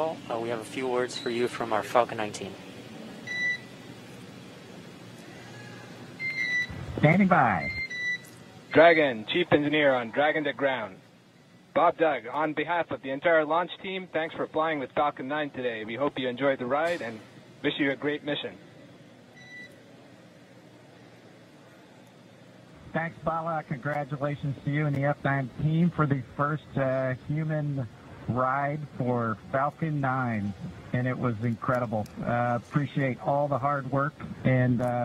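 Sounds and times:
short electronic beeps: 6.2 - 8.4
radio channel hiss: 6.7 - 7.8, 22.8 - 35.0.

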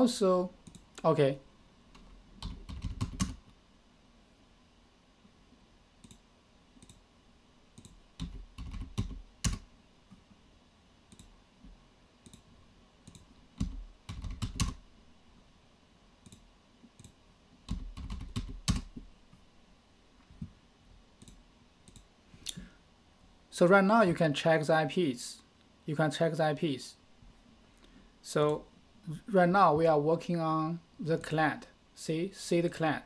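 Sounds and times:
keyboard typing: 2.0 - 3.5, 7.8 - 9.7, 12.2 - 14.8, 16.2 - 19.0
mouse clicks: 6.0 - 6.2, 11.1 - 11.3, 16.2 - 17.2, 21.2 - 22.6.

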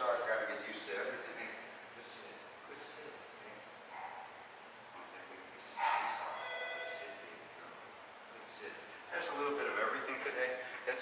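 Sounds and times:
faint indoor background noise: 0.0 - 11.0.

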